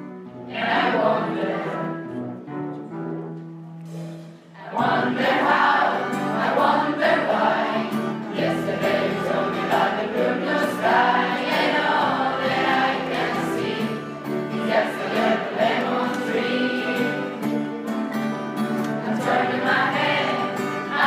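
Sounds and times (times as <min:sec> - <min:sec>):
instrumental accompaniment: 0:00.0 - 0:21.0
choir singing: 0:00.5 - 0:02.2, 0:04.6 - 0:18.0, 0:18.8 - 0:21.0.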